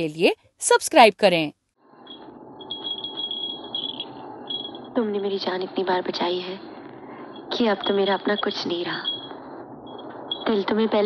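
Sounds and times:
crickets trilling: 1.9 - 11.0
low rushing night ambience: 1.9 - 11.0.

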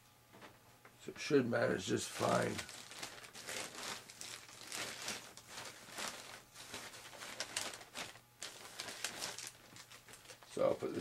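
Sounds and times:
rustling and crinkling of small items: 1.6 - 11.0.

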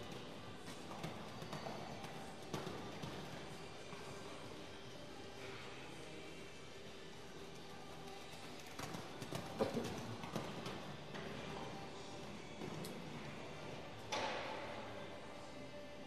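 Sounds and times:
quiet background music: 0.0 - 16.0.

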